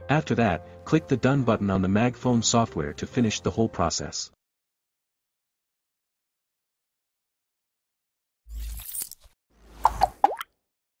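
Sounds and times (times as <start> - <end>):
quick pops rising in pitch: 9.8 - 10.5.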